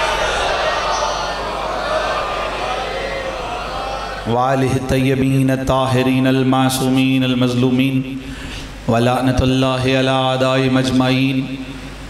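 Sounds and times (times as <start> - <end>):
man chanting into a microphone: 4.2 - 8.3.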